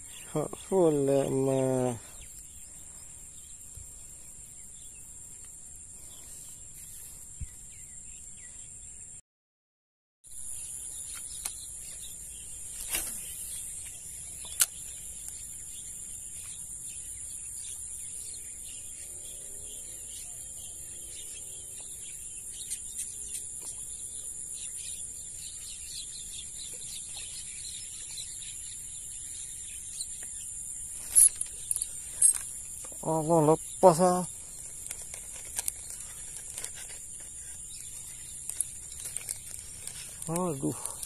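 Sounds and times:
insects chorus: 0:00.0 - 0:09.1, 0:10.3 - 0:41.0.

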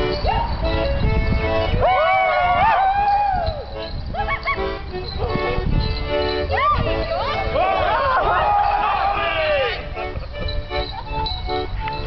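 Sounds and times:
folk dance tune: 0:00.0 - 0:12.0
high wavering whoop: 0:01.8 - 0:03.7.

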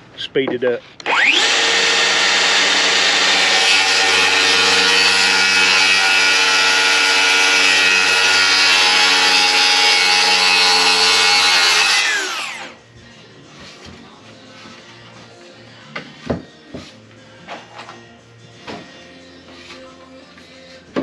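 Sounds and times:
circular saw cutting plywood: 0:01.0 - 0:12.8
saw winding down whine: 0:01.0 - 0:12.8.

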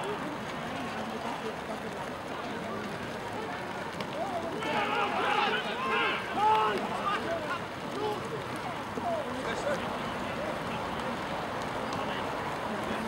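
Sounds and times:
outdoor noise: 0:00.0 - 0:13.0
rugby players shouting: 0:04.5 - 0:08.4.

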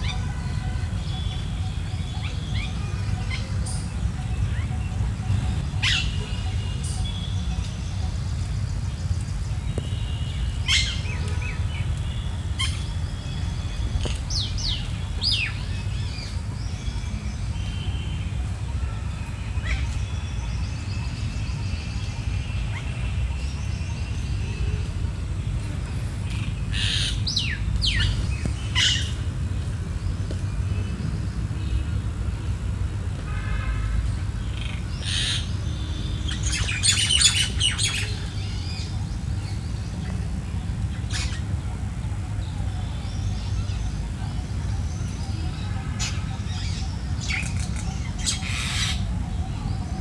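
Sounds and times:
birds chattering calls: 0:00.0 - 0:50.0
harsh bird calls: 0:34.3 - 0:50.0
bird harsh squawk: 0:47.4 - 0:49.1.

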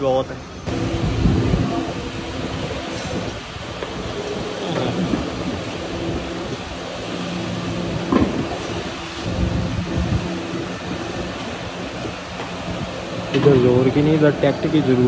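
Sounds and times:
workshop machine hum: 0:00.0 - 0:15.0.

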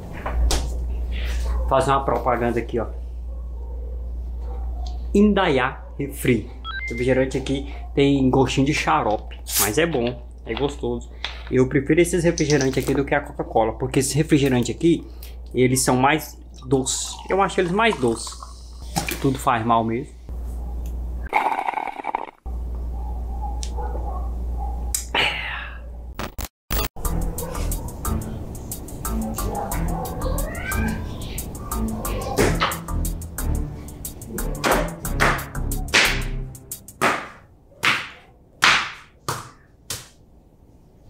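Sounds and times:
person slurping drink: 0:21.3 - 0:22.4.

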